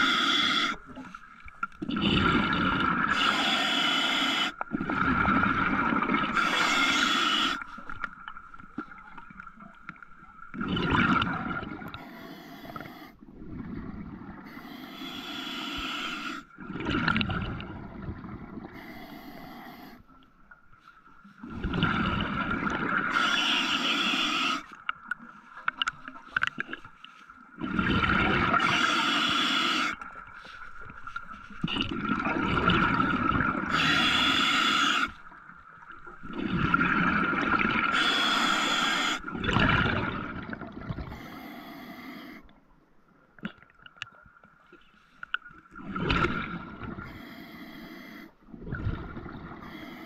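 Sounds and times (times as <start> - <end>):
rushing bubbling water underwater: 0.0 - 3.6, 4.5 - 12.0, 13.2 - 14.6, 16.5 - 18.9, 21.4 - 41.3, 45.4 - 47.2, 48.5 - 50.0.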